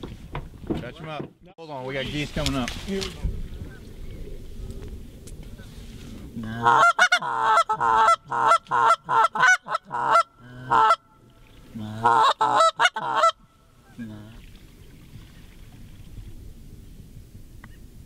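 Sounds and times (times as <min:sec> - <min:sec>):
goose call honking: 0:06.4 - 0:11.0, 0:11.9 - 0:14.1.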